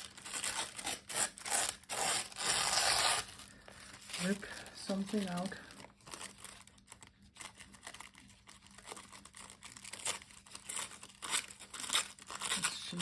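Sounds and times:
tissue paper tearing: 0:00.0 - 0:13.0.

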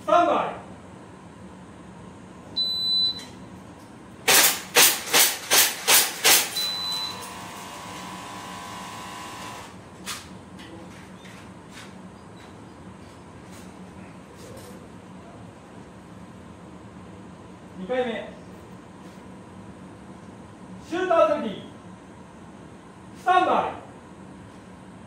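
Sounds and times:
steady hum: 0:00.0 - 0:25.0
airsoft pistol shots: 0:04.3 - 0:06.6
shot timer beep: 0:06.6 - 0:07.2.

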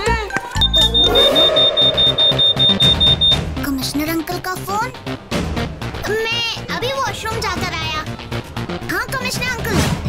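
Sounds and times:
background music: 0:00.0 - 0:10.0
rapid high-pitched electronic beeping: 0:00.6 - 0:03.4.

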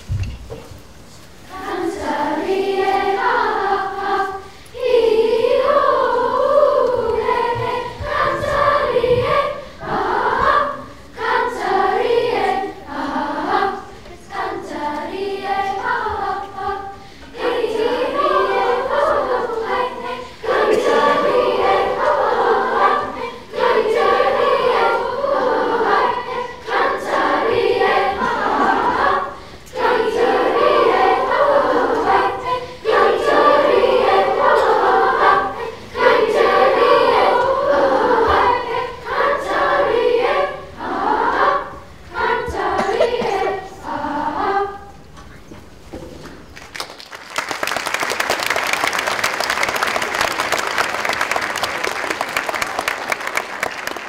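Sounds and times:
children's chorus singing: 0:01.3 - 0:46.4.

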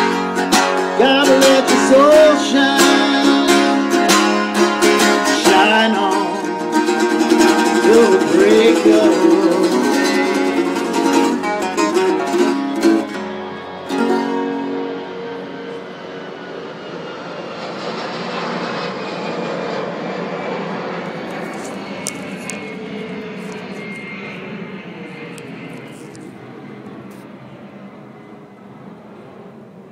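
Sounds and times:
airplane passing low overhead: 0:00.0 - 0:29.9
faint falling whine: 0:07.0 - 0:29.9.

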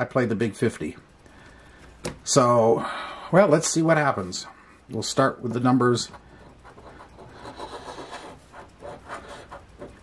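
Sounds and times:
coin scratching lottery ticket: 0:06.0 - 0:10.0.

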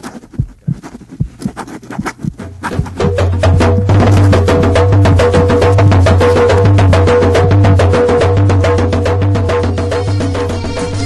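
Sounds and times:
quick clicking percussion strokes: 0:00.0 - 0:07.4
low soft drum beats: 0:00.2 - 0:11.0.

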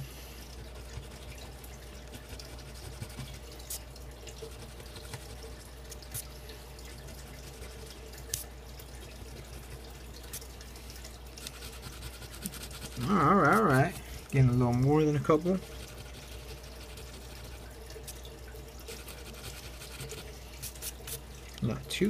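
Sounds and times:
coin scratching lottery ticket: 0:11.4 - 0:13.9, 0:15.6 - 0:17.6, 0:18.9 - 0:21.0.

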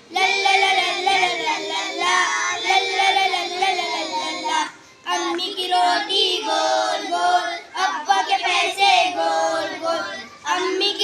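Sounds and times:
boys singing together: 0:00.0 - 0:11.0.

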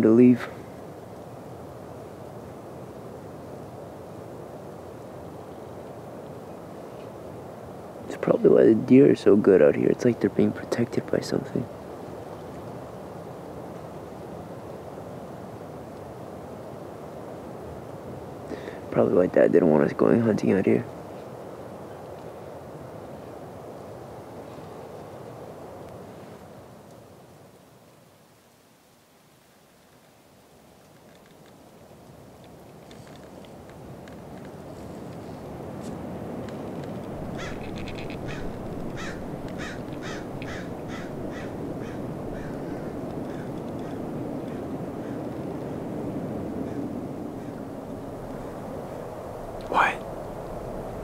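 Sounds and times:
low background rush: 0:00.0 - 0:26.2, 0:32.0 - 0:51.0
crow cawing: 0:37.2 - 0:45.3, 0:46.6 - 0:47.8.

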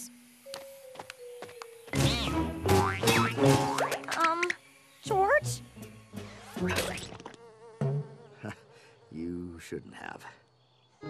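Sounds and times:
cartoon insect buzzing: 0:01.9 - 0:08.6.

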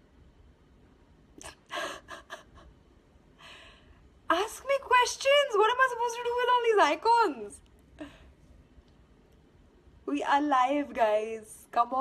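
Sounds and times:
woman laughing breathily: 0:01.5 - 0:02.8.

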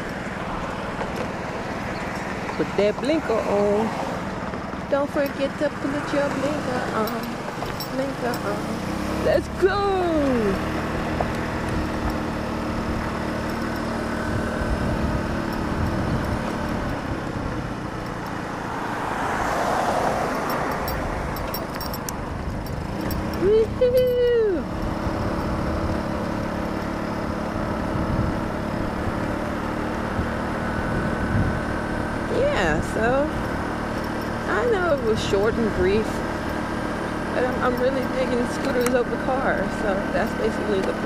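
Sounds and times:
road and wind noise: 0:00.0 - 0:41.0
scooter engine running: 0:00.0 - 0:41.0.

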